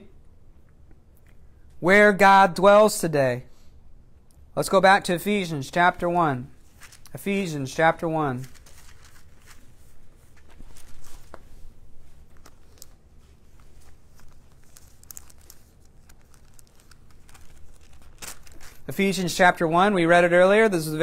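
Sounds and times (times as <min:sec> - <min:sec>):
thin pages rustling: 0:06.6 - 0:07.2, 0:08.3 - 0:18.9.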